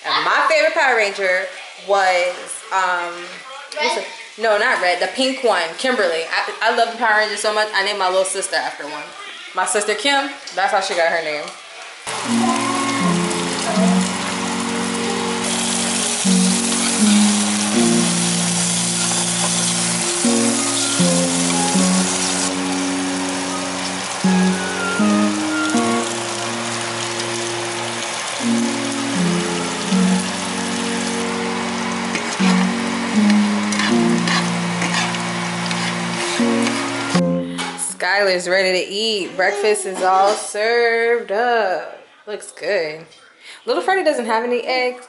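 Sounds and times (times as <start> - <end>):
eggs sizzling in a frying pan: 11.2 - 37.1
background music: 12.1 - 38.0.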